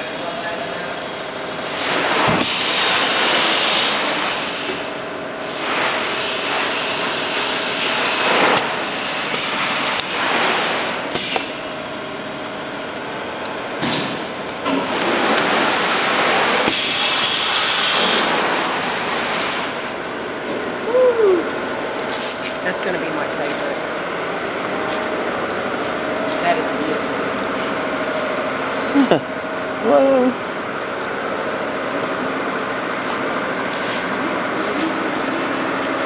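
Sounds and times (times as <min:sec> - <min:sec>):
machinery hissing rush: 0:00.0 - 0:11.6, 0:13.1 - 0:20.0.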